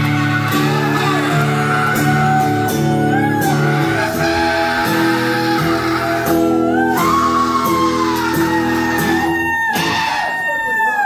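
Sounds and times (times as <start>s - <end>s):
person singing high wailing note: 0.0s - 10.4s.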